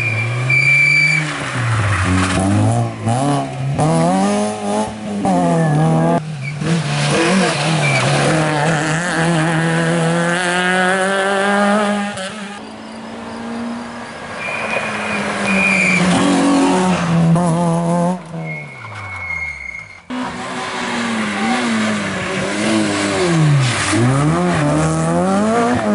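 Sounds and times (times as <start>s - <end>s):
rally car engines revving: 0.0s - 25.9s
short high-pitched squeals: 18.4s - 20.1s.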